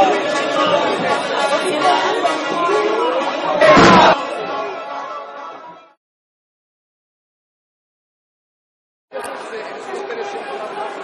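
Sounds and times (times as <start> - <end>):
crowd chattering: 0.0 - 6.0, 9.1 - 11.0.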